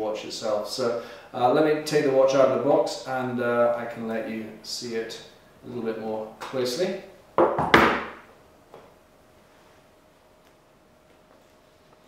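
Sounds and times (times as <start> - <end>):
box knocking on desk: 7.4 - 8.2.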